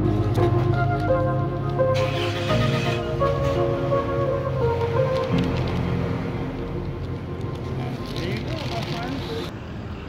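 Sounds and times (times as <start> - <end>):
background music with steady bass: 0.0 - 8.4.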